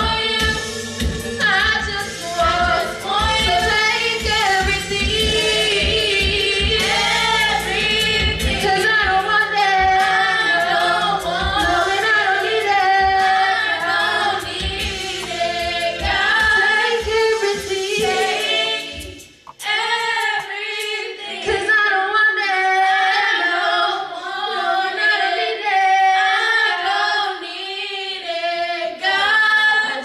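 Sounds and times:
women singing gospel: 0.0s - 30.0s
low beat: 14.3s - 19.7s.

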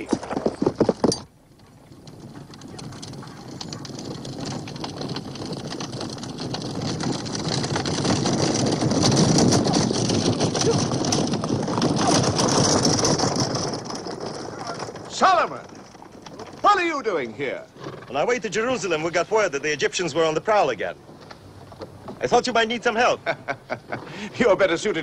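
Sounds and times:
chariot wheels rolling: 0.0s - 25.0s
horses' hooves: 0.0s - 25.0s.

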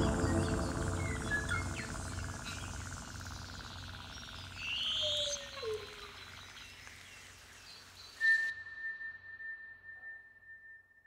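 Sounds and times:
bright gliding call: 0.0s - 2.8s
steady high pure tone: 0.0s - 4.0s.

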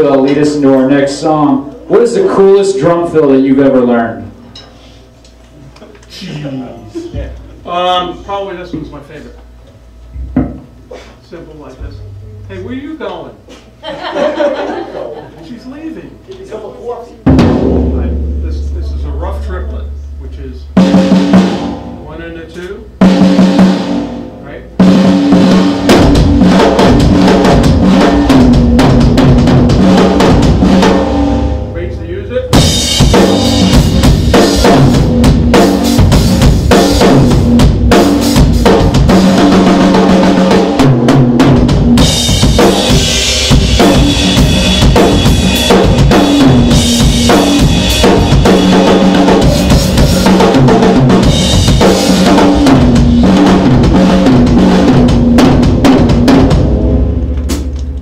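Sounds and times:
drum kit playing: 0.0s - 5.3s, 11.7s - 58.0s
cymbals ringing: 17.3s - 23.2s, 42.0s - 53.4s.

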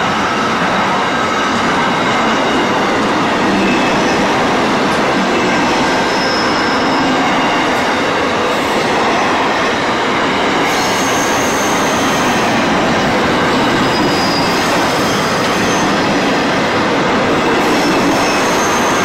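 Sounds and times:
train wheels rumbling on rails: 0.0s - 19.0s
high-pitched wheel squeals: 5.9s - 7.7s, 13.8s - 16.0s, 17.7s - 19.0s.

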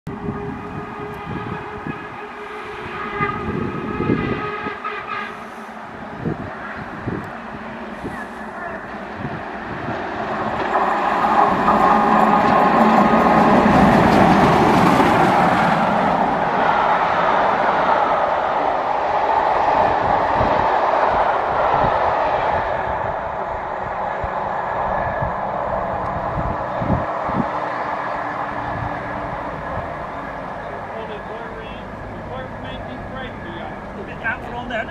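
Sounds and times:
steam locomotives and carriages passing: 0.1s - 34.9s
train whistle: 0.2s - 5.8s.

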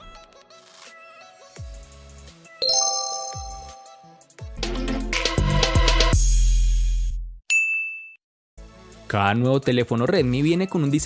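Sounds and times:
background music: 1.4s - 5.0s
bright ding: 2.6s - 4.1s.

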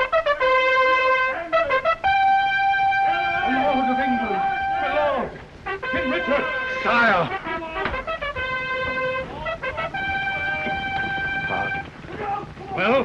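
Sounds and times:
trumpets sounding a call: 0.0s - 13.0s
voices: 0.0s - 13.0s.

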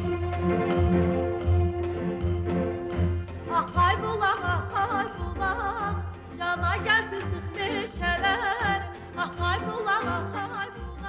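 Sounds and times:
instrumental accompaniment with beat: 0.0s - 10.4s
woman singing folk song: 3.4s - 11.0s.

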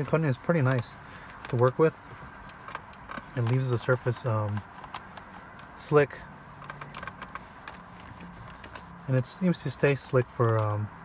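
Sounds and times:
towel rubbing on plastic: 0.0s - 11.0s.

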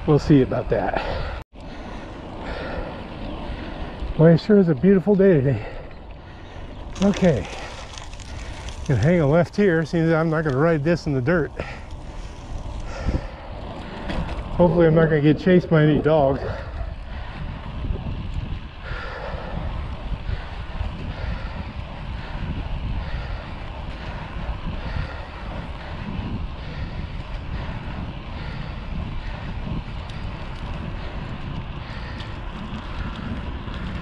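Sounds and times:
road and tyre noise: 0.0s - 34.0s
wind buffeting microphone: 0.0s - 34.0s.

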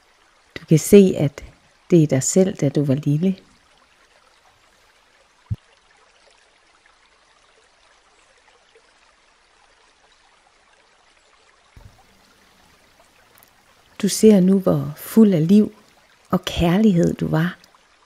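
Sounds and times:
small stream trickling: 0.0s - 18.0s.

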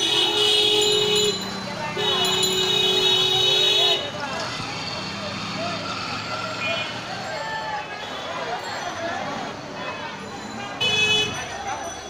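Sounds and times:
vehicle engine humming: 0.0s - 11.8s
passers-by chatting: 0.0s - 12.0s.

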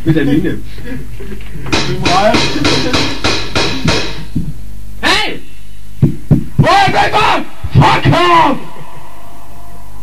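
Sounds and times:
drum kit steady beat: 1.7s - 4.8s, 6.0s - 6.8s.

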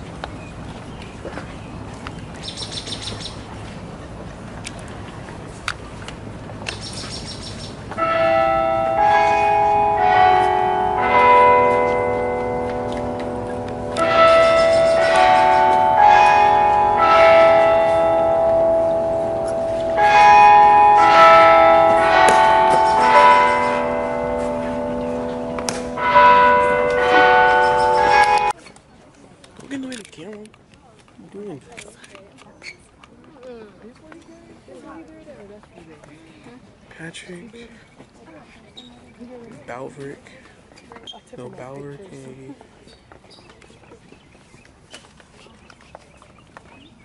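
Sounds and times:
ringing bell melody: 8.0s - 28.6s.

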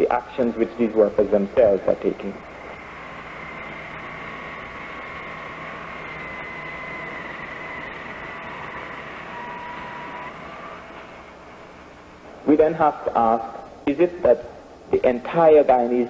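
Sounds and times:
faint two-pitch whine: 0.0s - 16.0s
machinery hum and rumble: 0.0s - 16.0s.

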